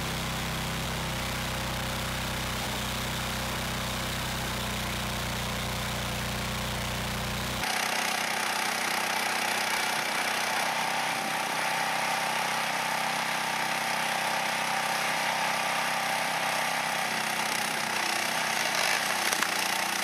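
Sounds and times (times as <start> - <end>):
gasoline engine running: 0.0 - 7.8.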